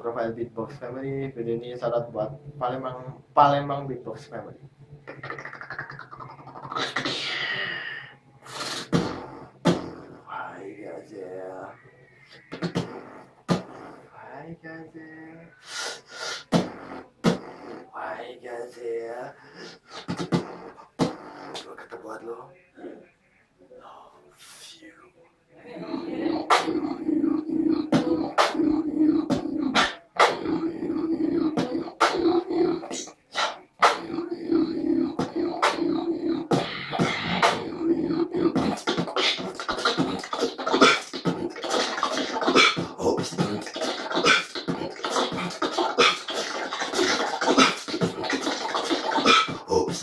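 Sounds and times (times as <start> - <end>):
person beatboxing: 5.0 - 10.6, 12.3 - 14.1, 15.6 - 18.1, 19.4 - 21.9, 26.0 - 50.0.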